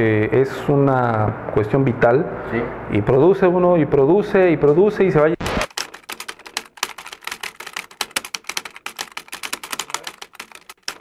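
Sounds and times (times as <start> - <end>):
typewriter keys clacking: 5.6 - 11.0.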